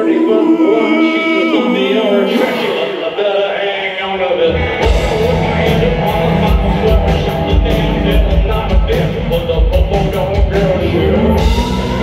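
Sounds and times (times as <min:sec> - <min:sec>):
live rock band: 0:04.4 - 0:12.0
person singing long notes: 0:04.4 - 0:12.0.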